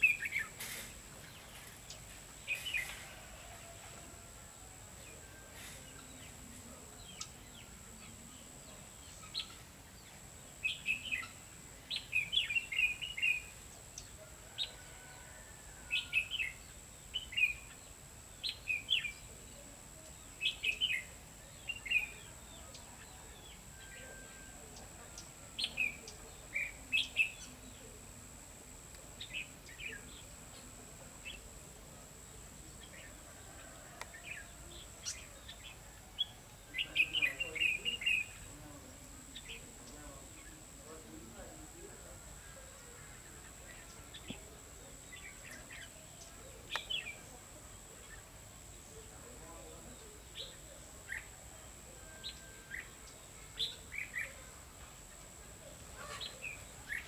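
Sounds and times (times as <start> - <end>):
bird singing chirpy phrases: 0.0 - 0.6, 5.3 - 14.2, 16.0 - 28.1, 29.1 - 57.0.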